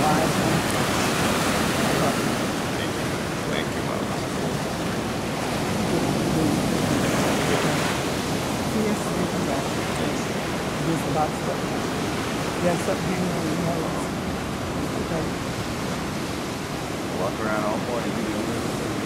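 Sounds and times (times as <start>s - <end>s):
ocean waves breaking on beach: 0.0s - 19.0s.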